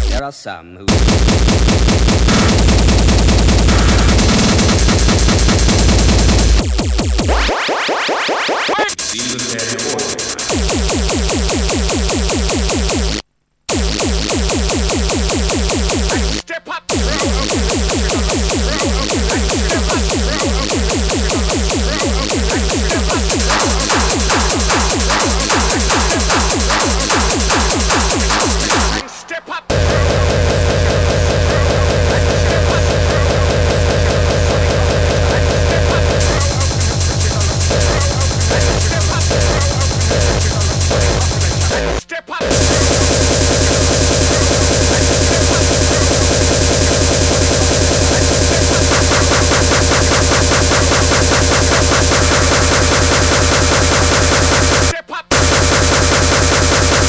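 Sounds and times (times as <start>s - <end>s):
fast distorted kick drums: 0.0s - 0.2s, 0.9s - 7.6s, 14.2s - 29.0s, 29.7s - 57.0s
speedcore electronic music: 0.0s - 0.2s, 0.9s - 29.1s, 29.7s - 57.0s
noisy synths: 0.9s - 57.0s.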